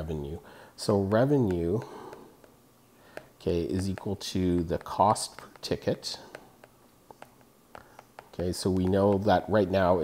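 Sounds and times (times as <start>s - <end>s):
stylus tapping on glass screen: 1.4s - 9.4s.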